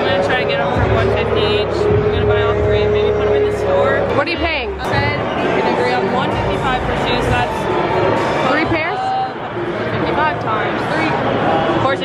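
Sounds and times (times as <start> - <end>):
woman speaking: 0.0 - 7.6, 8.4 - 11.2
steady low hum: 0.0 - 8.9
busy indoor hall noise: 0.0 - 12.0.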